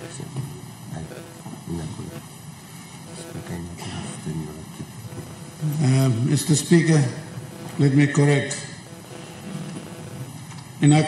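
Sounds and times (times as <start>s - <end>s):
steady background hum: 0.0s - 11.0s
men's murmured voices: 3.1s - 10.3s.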